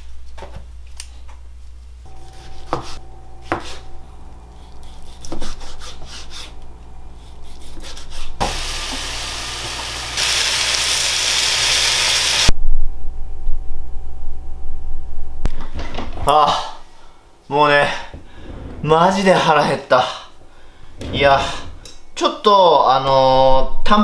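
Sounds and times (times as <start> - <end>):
chicken sizzling in a pan: 8.4 - 12.5.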